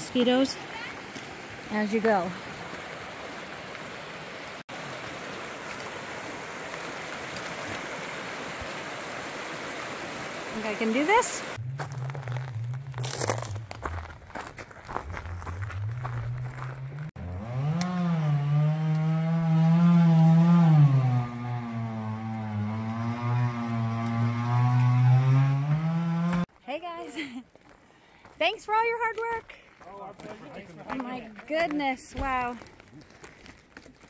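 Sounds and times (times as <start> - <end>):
chainsaw cutting through log: 17.2 - 26.5.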